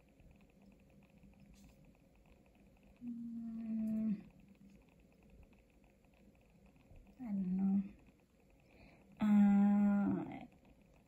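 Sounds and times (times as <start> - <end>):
woman humming mmm: 3.0 - 4.3.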